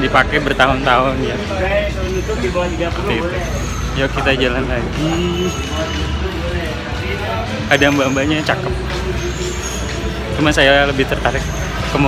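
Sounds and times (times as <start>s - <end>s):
road traffic rumble: 0.0s - 12.0s
voices: 0.0s - 12.0s.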